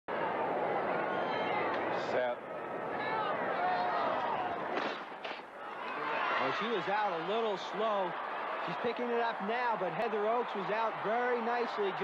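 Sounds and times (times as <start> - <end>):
stadium crowd chatter: 0.1 - 12.0.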